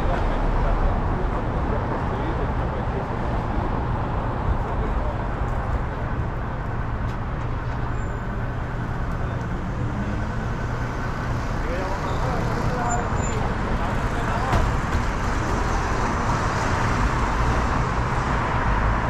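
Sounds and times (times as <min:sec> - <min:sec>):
surrounding traffic: 0:00.0 - 0:19.0.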